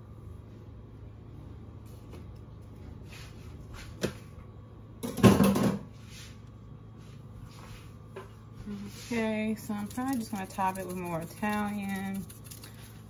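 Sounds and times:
low steady hum: 0:00.0 - 0:13.0
clatter of items in cupboard: 0:05.0 - 0:05.9.

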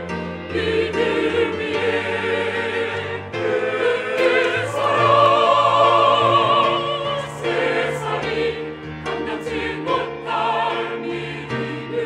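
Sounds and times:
mixed choir singing: 0:00.0 - 0:12.0
piano accompaniment: 0:00.0 - 0:12.0.

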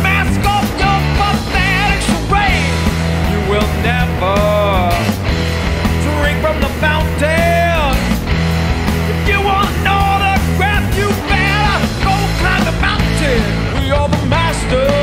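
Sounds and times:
drum kit: 0:00.0 - 0:15.0
heavy guitars: 0:00.0 - 0:15.0
rock music: 0:00.0 - 0:15.0
high melodic line bending in pitch: 0:00.6 - 0:13.7.

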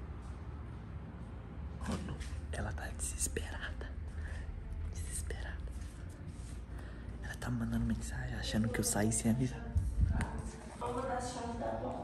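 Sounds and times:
man whispering: 0:02.4 - 0:06.1, 0:07.1 - 0:09.6.

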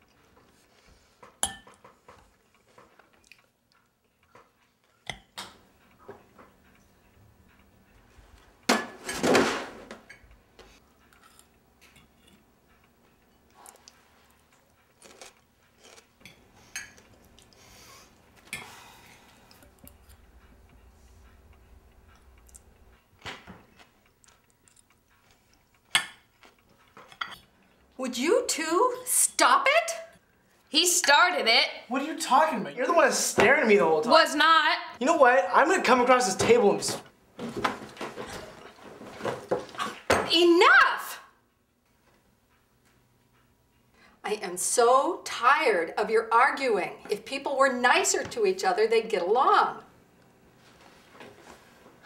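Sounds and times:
cutlery clinking on dish: 0:01.4 - 0:02.0.

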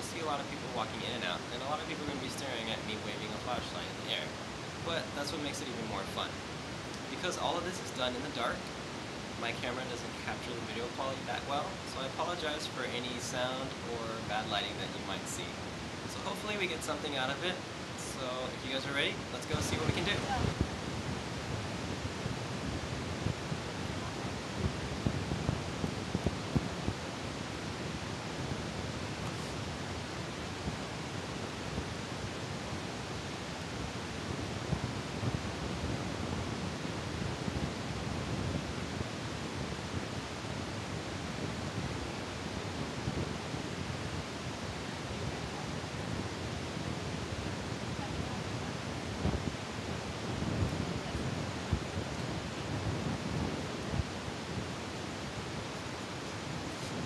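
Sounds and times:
low rumbles on microphone: 0:00.0 - 0:57.0
steady background hiss: 0:00.0 - 0:57.0.

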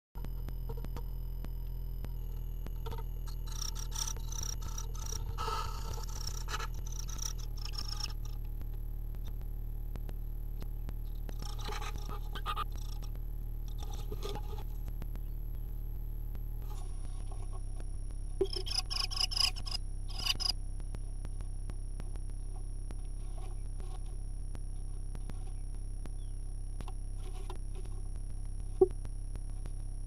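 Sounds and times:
steady low hum: 0:00.2 - 0:30.0
scratching and rustling: 0:11.2 - 0:13.1, 0:13.7 - 0:14.8.

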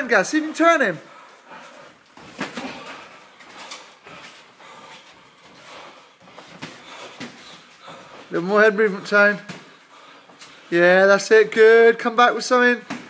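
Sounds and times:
gloved punches and footwork thuds: 0:02.1 - 0:09.8, 0:12.8 - 0:13.0.

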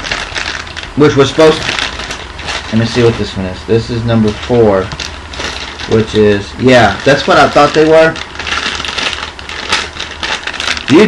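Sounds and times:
plastic packaging crackling: 0:00.0 - 0:11.0.

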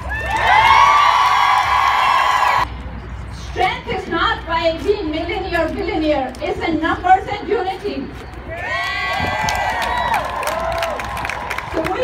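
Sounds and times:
crowd cheering and whooping: 0:00.0 - 0:02.7, 0:08.5 - 0:11.9.

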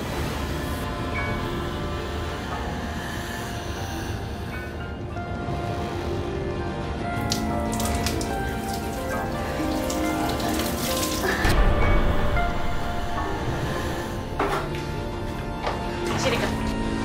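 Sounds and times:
dramatic music score: 0:00.0 - 0:17.0
water splashing onto tiled floor: 0:07.2 - 0:11.7.

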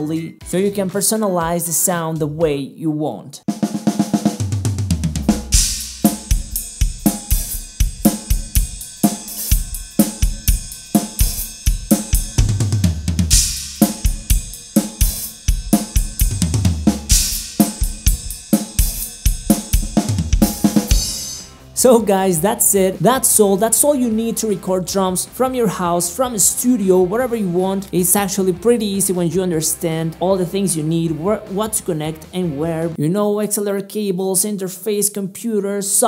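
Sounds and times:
drum kit groove: 0:03.4 - 0:33.0
crash cymbals: 0:05.4 - 0:12.4, 0:13.3 - 0:16.3, 0:17.1 - 0:20.0, 0:20.8 - 0:21.7.

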